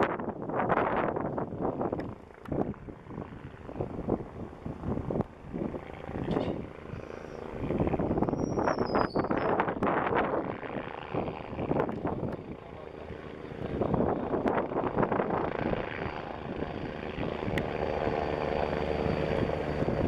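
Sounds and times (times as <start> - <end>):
distant helicopter: 0.0 - 20.0
wind buffeting microphone: 0.0 - 20.0.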